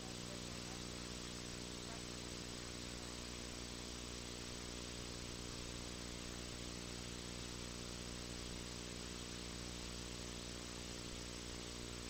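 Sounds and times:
audio line hiss: 0.0 - 12.0
electrical mains hum: 0.0 - 12.0.

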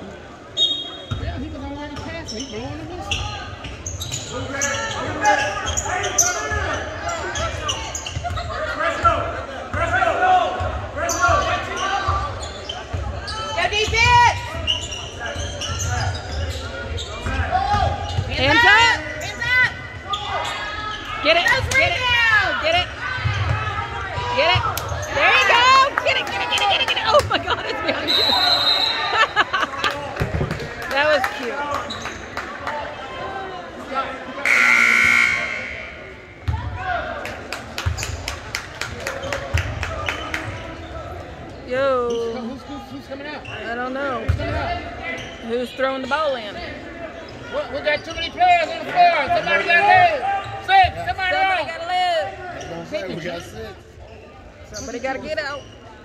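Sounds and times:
spectators' voices: 0.0 - 56.0
referee's whistle: 0.6 - 1.2, 28.0 - 29.2, 34.4 - 36.2
sneakers squeaking on gym floor: 0.6 - 8.5, 11.0 - 21.6, 40.0 - 46.4, 54.0 - 56.0
gym horn blaring: 34.4 - 36.0
basketball bouncing: 36.4 - 36.7.

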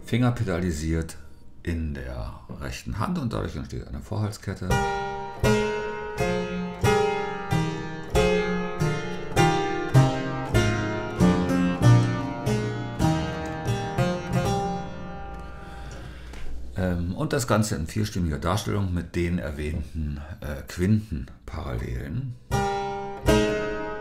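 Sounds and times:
clavichord playing slow chords: 4.7 - 16.2.

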